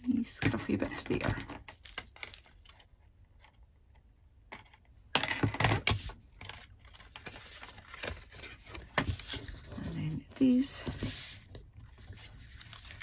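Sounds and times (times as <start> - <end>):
cardstock rustling and scraping: 5.8 - 13.0
scratchy paper handling: 6.0 - 13.0.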